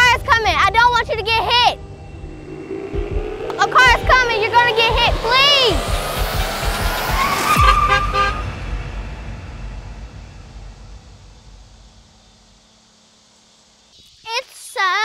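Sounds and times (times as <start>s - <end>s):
low rumble: 0.0s - 14.0s
rising whoosh: 0.4s - 13.0s.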